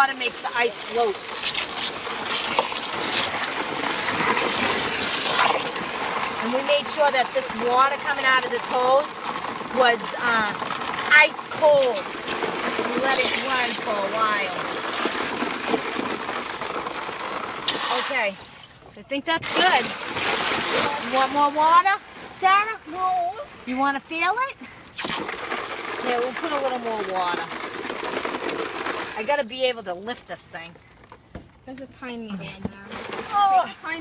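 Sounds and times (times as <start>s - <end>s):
hose water splashing into bucket: 0.0s - 23.7s, 24.8s - 29.8s, 32.9s - 34.0s.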